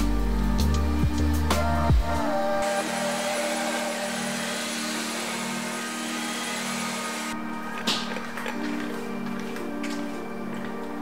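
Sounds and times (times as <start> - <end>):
vacuum cleaner whining: 2.6 - 10.7.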